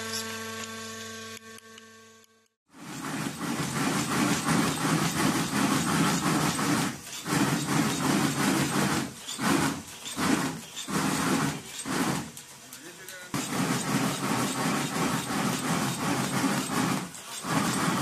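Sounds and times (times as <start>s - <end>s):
machine mechanical clatter: 2.7s - 18.0s.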